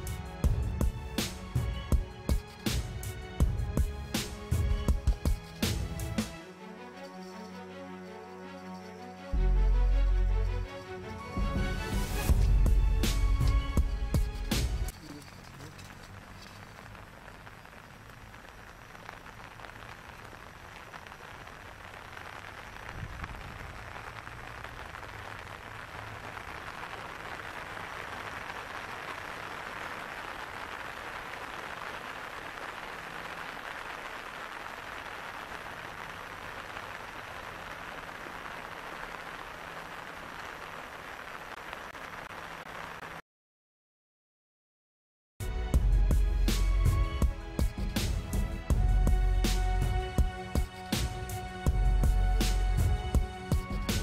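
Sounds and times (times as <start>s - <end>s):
light rain falling: 0.0s - 43.2s, 45.4s - 54.0s.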